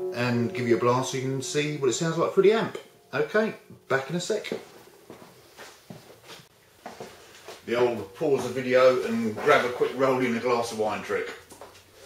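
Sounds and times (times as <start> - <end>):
soft rustling: 4.5 - 10.0.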